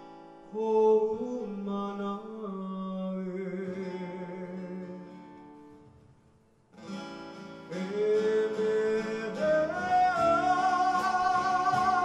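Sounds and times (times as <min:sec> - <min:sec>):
acoustic guitar strumming: 0:00.0 - 0:12.0
live acoustic band: 0:00.0 - 0:12.0.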